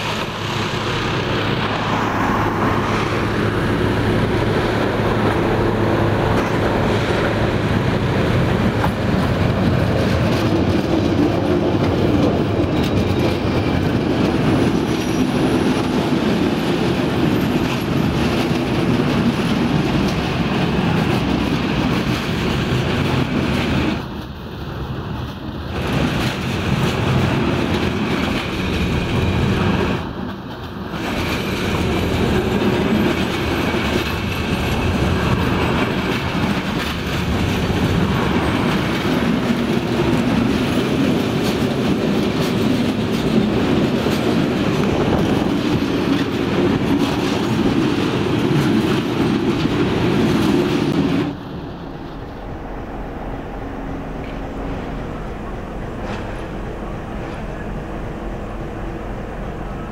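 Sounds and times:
freight train wagons rolling past: 0.0 - 59.9.

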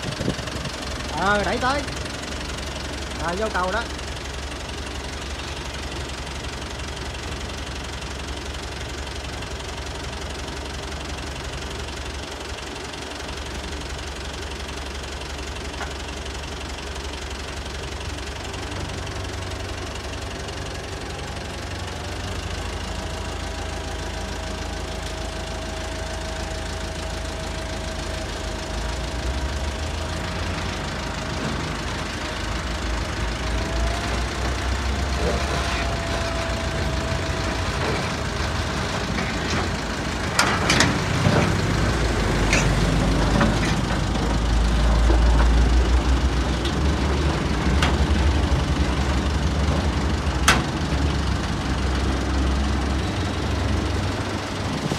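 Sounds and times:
tractor diesel engine running: 0.0 - 54.9.

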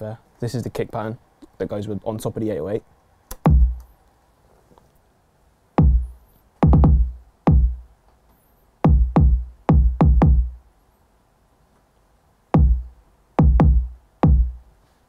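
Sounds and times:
punchy kick drum booms: 3.5 - 3.8, 5.8 - 7.8, 8.8 - 10.6, 12.6 - 14.6.

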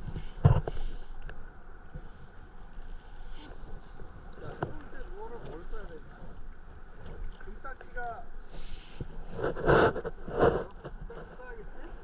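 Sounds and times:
waves sloshing against kayak hull: 0.0 - 12.0.

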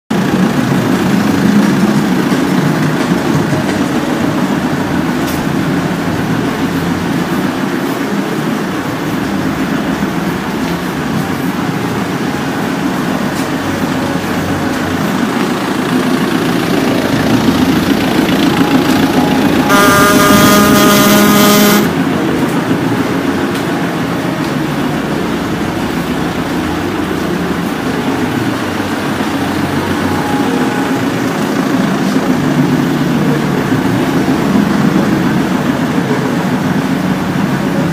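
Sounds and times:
car engine idling: 0.1 - 37.9
car horn: 19.4 - 22.1.

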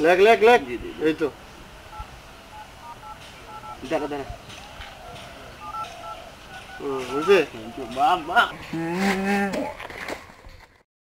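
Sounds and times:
touch-tone phone beeps: 1.9 - 4.0, 5.6 - 7.4.

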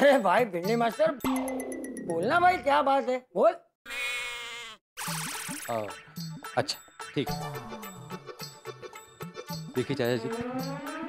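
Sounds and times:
background music: 0.0 - 2.7, 5.2 - 11.0
nasal bleat-like tone: 3.9 - 4.8.

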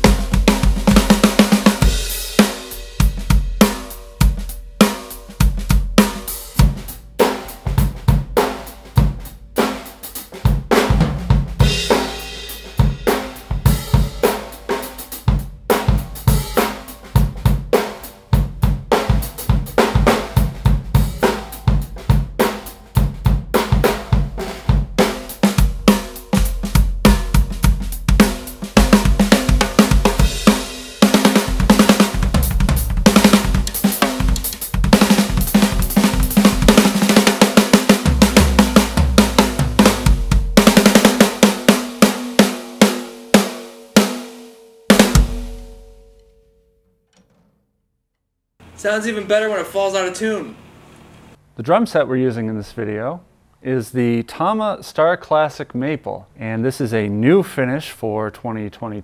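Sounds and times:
snare drum: 0.0 - 45.8
drum kit groove: 0.0 - 46.2.

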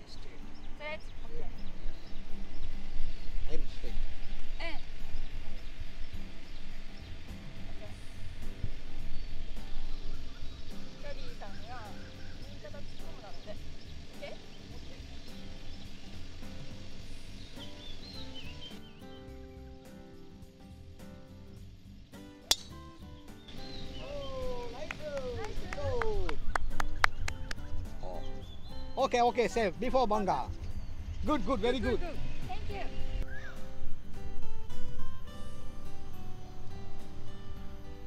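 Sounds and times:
background music: 0.0 - 38.0
voices: 10.9 - 15.6, 23.8 - 26.5
golf driver striking ball: 22.4 - 22.9.

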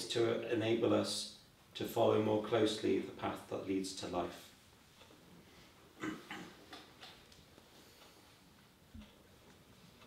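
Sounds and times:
soft rustle: 4.3 - 6.0, 6.6 - 10.0.

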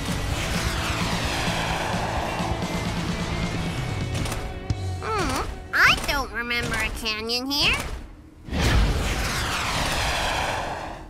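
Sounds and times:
cartoon fly-by whoosh: 8.5 - 11.0.

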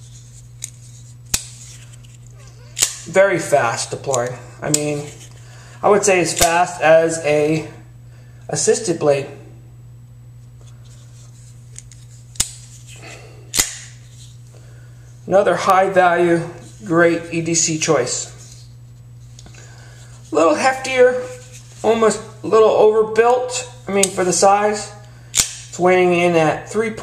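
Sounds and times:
knife blade snapping shut: 2.8 - 3.1, 13.5 - 13.9.

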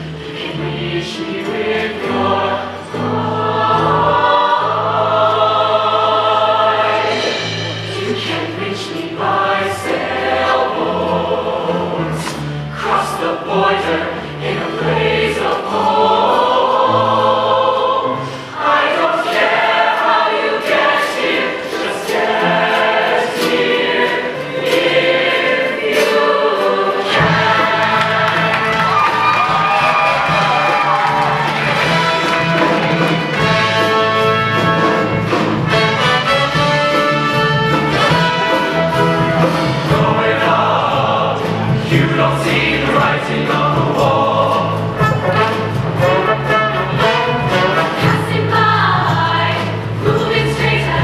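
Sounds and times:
choir singing in harmony: 0.0 - 51.0.

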